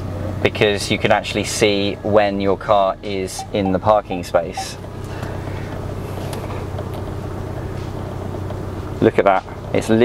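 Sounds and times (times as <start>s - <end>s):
car engine low hum: 0.0s - 10.0s.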